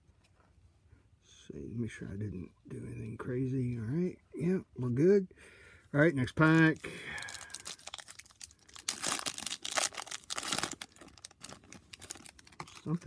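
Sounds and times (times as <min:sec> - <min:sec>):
foil wrapper crinkling: 0:06.4 - 0:13.0.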